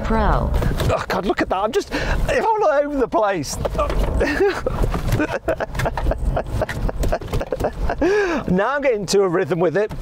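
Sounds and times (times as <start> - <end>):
car engine and road rumble: 0.0 - 10.0
voices: 0.0 - 10.0.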